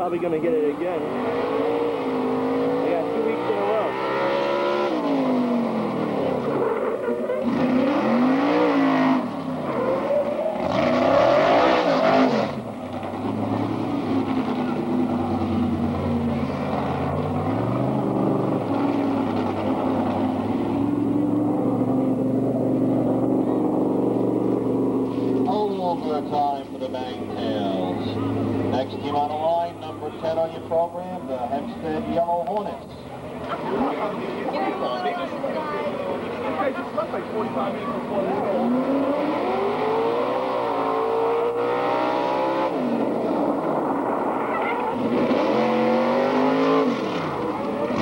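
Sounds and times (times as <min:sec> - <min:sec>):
engine revving and droning: 0:00.9 - 0:29.4, 0:36.2 - 0:48.0.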